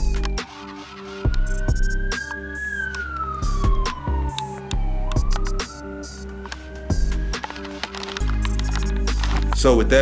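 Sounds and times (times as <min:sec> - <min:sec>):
music with heavy beat: 0:00.0 - 0:02.7, 0:03.4 - 0:09.6
fire engine siren wailing: 0:00.0 - 0:06.9.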